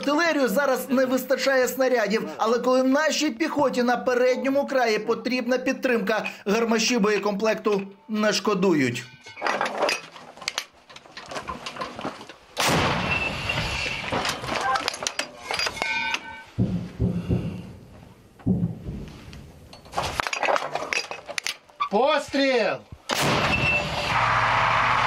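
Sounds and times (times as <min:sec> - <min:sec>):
metallic clanks at breech: 0:09.2 - 0:12.4, 0:13.1 - 0:16.7
loud burst of noise: 0:23.1 - 0:25.0.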